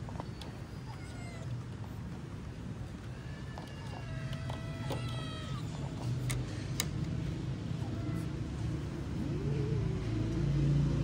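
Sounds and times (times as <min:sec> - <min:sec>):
kittens mewing: 0:00.7 - 0:01.6, 0:07.7 - 0:10.4.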